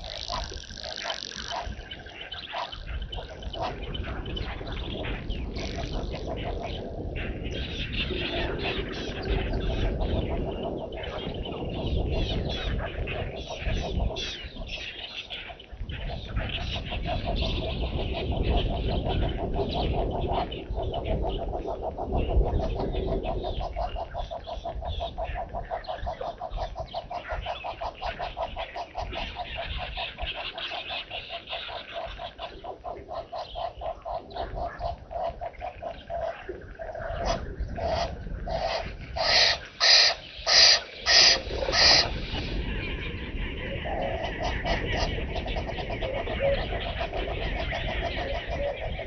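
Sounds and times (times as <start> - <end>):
loud harsh animal calls: 0.0 - 3.9, 36.2 - 42.6
fast pulsed animal calls: 0.0 - 10.8, 23.4 - 49.0.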